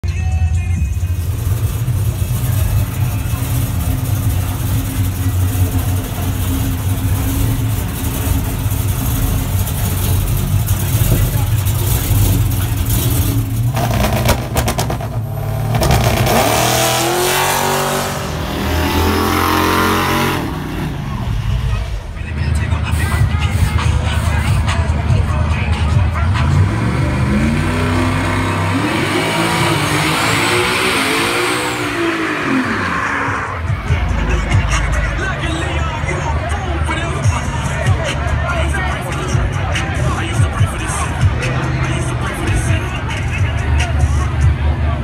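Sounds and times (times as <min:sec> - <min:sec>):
car engine deep rumble: 0:00.0 - 0:45.0
people's voices: 0:00.0 - 0:45.0.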